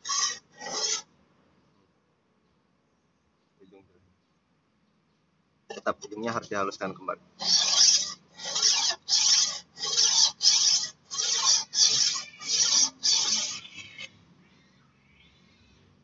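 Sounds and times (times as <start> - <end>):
blade grinding on whetstone: 7.4 - 13.5.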